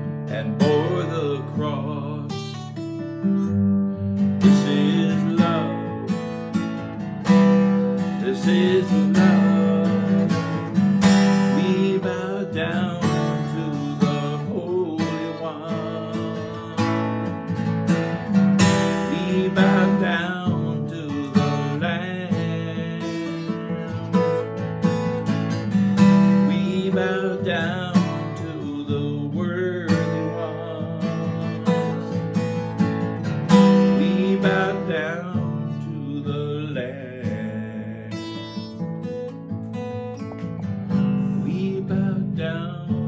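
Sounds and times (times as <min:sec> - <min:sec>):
acoustic guitar strumming: 0:00.0 - 0:43.0.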